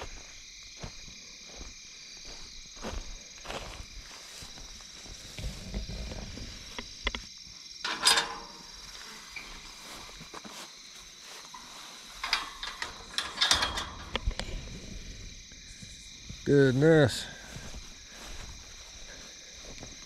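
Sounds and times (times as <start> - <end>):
crickets trilling: 0.0 - 20.0
metal gate clanking: 7.8 - 9.8, 11.5 - 15.0.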